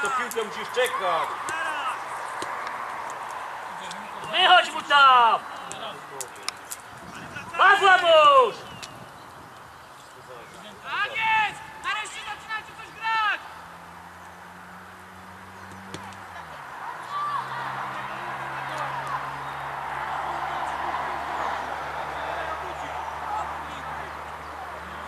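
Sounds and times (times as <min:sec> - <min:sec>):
hubbub of voices shouting: 0:00.0 - 0:05.9, 0:07.1 - 0:08.6, 0:10.8 - 0:13.5, 0:15.9 - 0:25.0
loud calls: 0:09.9 - 0:25.0.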